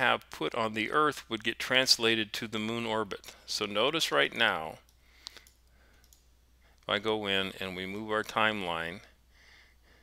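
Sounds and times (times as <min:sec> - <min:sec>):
faint room hiss: 0:00.0 - 0:10.0
computer mouse click: 0:04.8 - 0:06.9.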